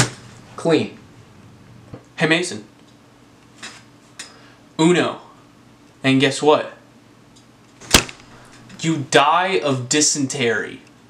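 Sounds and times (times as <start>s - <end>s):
playing card slapped down: 7.9s - 8.2s.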